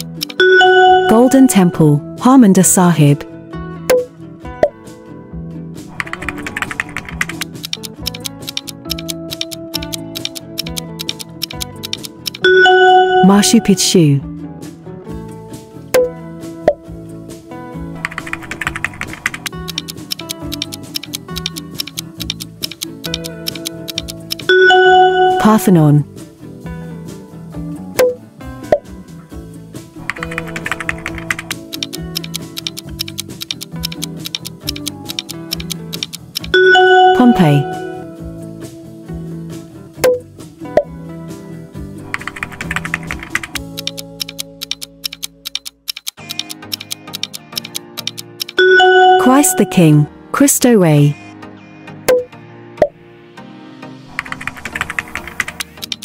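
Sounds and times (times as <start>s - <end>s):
rapid ticking countdown timer: 0.0s - 2.0s, 5.9s - 13.9s, 18.0s - 26.0s, 30.0s - 38.0s, 42.1s - 50.1s, 54.2s - 56.0s
background music: 0.0s - 56.0s
keyboard key clicks: 6.0s - 12.4s, 18.0s - 24.5s, 30.1s - 36.5s, 42.2s - 48.6s, 54.2s - 56.0s.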